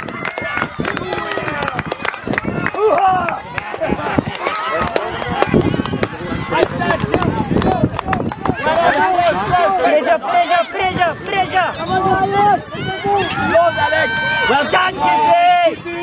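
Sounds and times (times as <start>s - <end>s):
people shouting: 0.0s - 16.0s.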